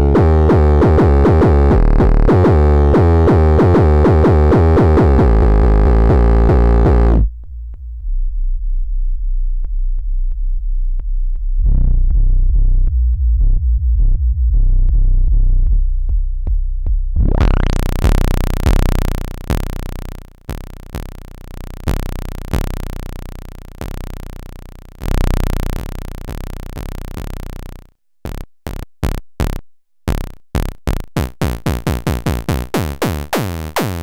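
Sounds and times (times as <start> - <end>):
buzzy synthesizer notes: 0.0 - 7.4, 17.2 - 34.0
low synthesizer bass tone: 0.0 - 10.6, 11.6 - 15.9, 17.1 - 34.0.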